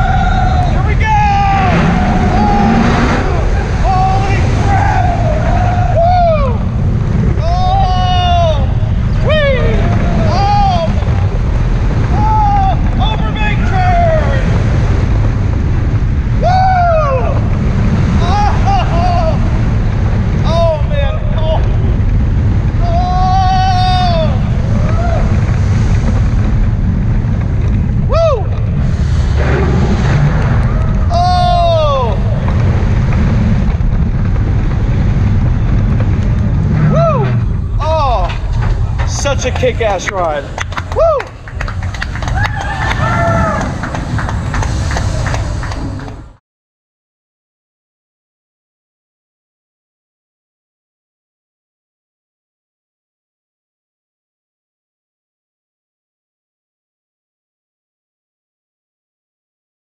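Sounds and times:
riders screaming: 0.0 - 15.1, 16.0 - 21.7, 22.6 - 26.4, 28.0 - 46.3
roller coaster roaring on track: 0.0 - 46.4.

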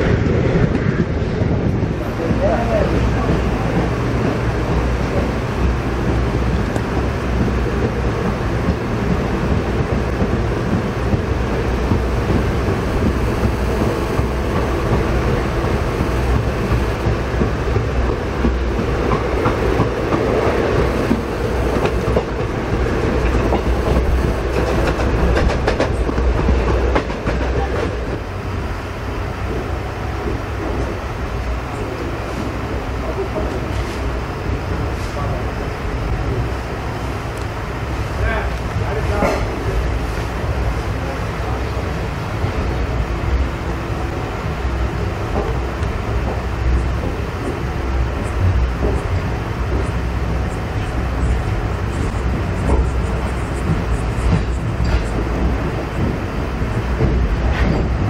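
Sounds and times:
train wheels rumbling on rail: 0.0 - 58.0
sharp knocks of train wheels: 2.2 - 28.3, 38.6 - 39.7, 45.2 - 58.0.

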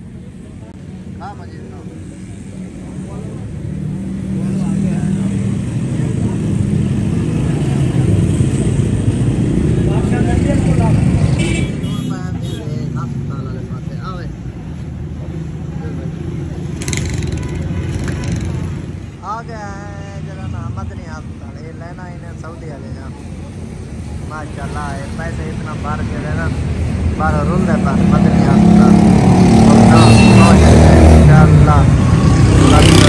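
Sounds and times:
vehicle engines rumbling: 0.0 - 33.0.

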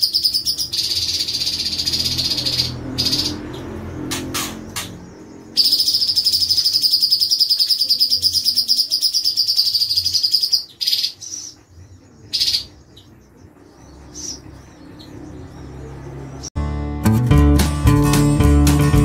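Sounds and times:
bird singing: 0.0 - 16.6.

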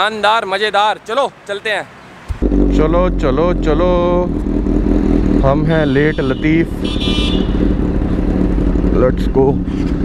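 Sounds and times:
motorcycle engine idling: 2.4 - 10.0.

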